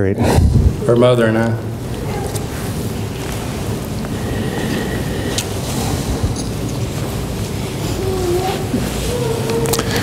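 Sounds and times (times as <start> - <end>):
room rumble and hiss: 0.0 - 10.0.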